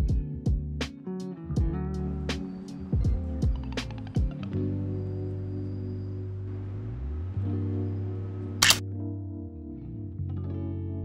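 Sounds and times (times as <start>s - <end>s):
background music with low notes: 0.0s - 11.0s.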